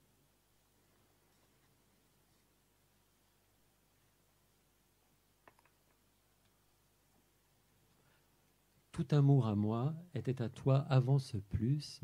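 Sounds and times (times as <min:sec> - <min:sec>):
faint background hiss: 0:00.0 - 0:12.0
man's voice: 0:08.9 - 0:12.0.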